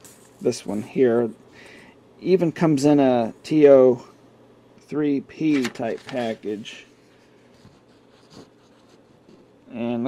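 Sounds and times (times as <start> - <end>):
paper rustling: 5.4 - 9.4
soft paper scrape: 5.5 - 9.5.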